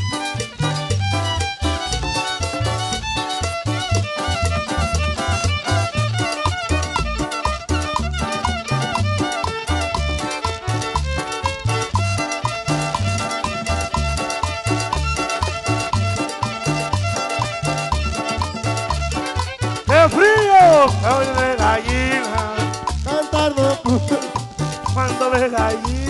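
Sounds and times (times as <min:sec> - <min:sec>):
guitar: 0:00.0 - 0:26.0
upright bass: 0:00.0 - 0:26.0
violin: 0:00.0 - 0:26.0.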